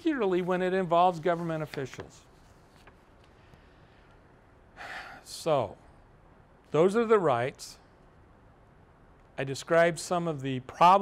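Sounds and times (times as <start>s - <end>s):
man's intake of breath: 4.8s - 5.3s.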